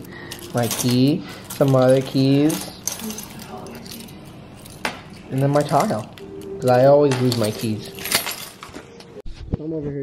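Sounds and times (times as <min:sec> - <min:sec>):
keys jingling on countertop: 0:00.0 - 0:09.2.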